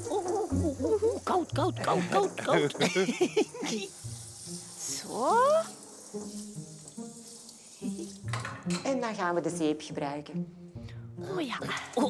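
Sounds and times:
shower head spraying water: 0.0s - 8.8s
background music: 0.0s - 12.0s.

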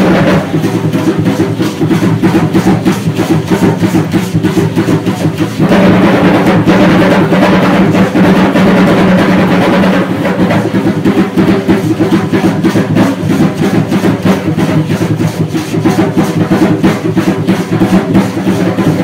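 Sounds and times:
drum beating dance rhythm: 0.0s - 19.0s.

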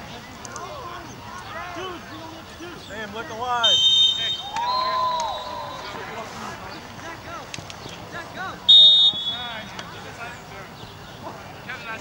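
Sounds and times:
players and spectators shouting: 0.6s - 6.4s
referee's whistle blast: 3.6s - 5.9s, 8.7s - 9.6s.

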